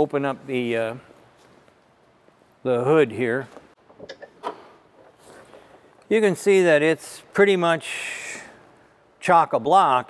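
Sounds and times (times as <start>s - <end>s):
faint handling noise: 0.0s - 6.4s.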